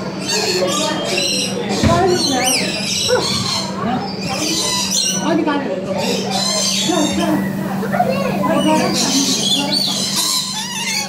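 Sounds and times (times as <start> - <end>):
parrots chattering and squawking: 0.0 - 11.0.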